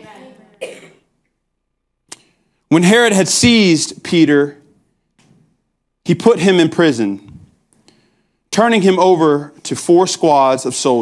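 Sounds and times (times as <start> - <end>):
man clearing his throat: 0.6 - 1.1
man speaking: 2.7 - 4.7, 6.0 - 7.3, 8.5 - 11.0.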